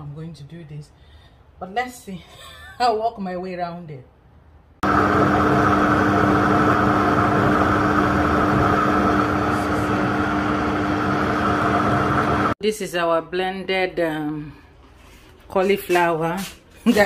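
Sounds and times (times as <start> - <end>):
blender chopping vegetables: 4.8 - 12.6.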